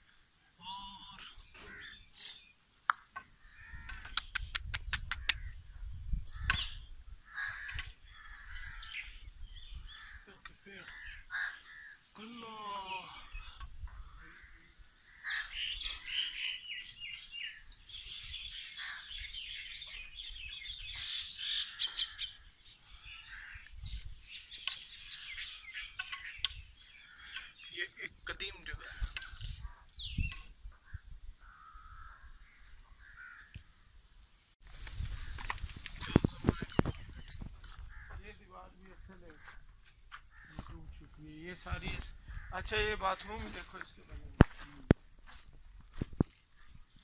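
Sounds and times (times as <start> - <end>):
small birds chirping: 0.0 - 34.0, 34.6 - 47.0
crows cawing: 0.8 - 2.1, 3.2 - 4.2, 5.0 - 5.6, 6.3 - 12.2, 12.9 - 17.2, 18.6 - 19.4, 20.9 - 23.8, 26.9 - 27.7, 30.8 - 33.9, 37.7 - 40.9, 42.2 - 42.8.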